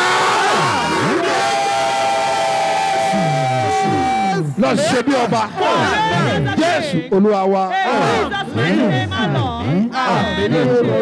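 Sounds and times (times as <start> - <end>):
crowd cheering and shouting: 0.0 - 7.0, 7.7 - 11.0
long held high note: 1.4 - 4.6.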